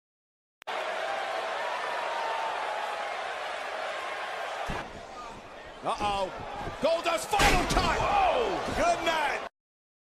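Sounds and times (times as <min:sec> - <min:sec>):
people shouting: 0:00.7 - 0:09.4.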